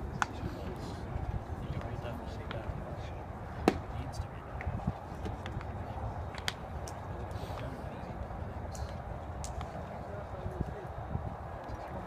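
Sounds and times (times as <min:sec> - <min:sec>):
background chatter: 0:00.0 - 0:12.0
baseball smacking into a mitt: 0:03.6 - 0:03.9.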